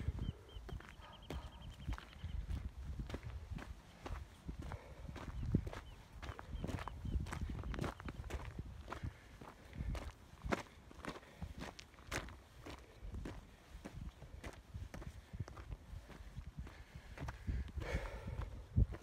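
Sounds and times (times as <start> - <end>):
footsteps crunching on gravel: 0.8 - 16.3.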